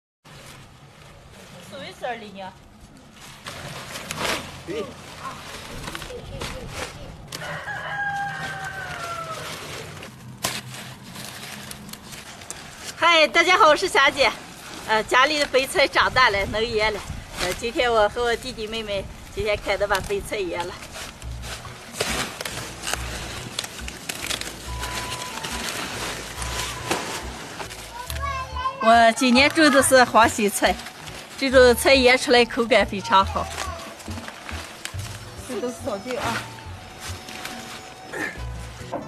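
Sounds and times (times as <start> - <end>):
crisp rustling of leaves: 0.2 - 39.0
rooster crowing: 7.3 - 9.9
knife cracking cabbage stalks: 20.9 - 28.2.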